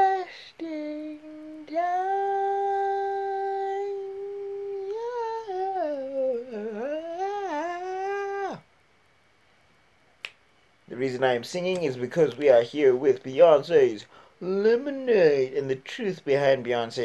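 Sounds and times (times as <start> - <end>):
man singing wordless high notes: 0.0 - 8.7, 10.9 - 17.0.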